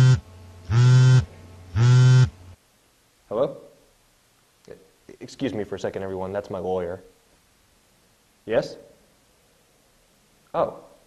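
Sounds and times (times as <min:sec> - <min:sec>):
mobile phone ringing: 0:00.0 - 0:02.3.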